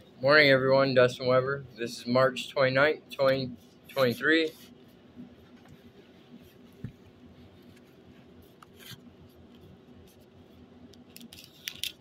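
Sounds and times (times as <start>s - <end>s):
faint room hum: 0.0s - 12.0s
handling clicks and rustles: 5.4s - 12.0s.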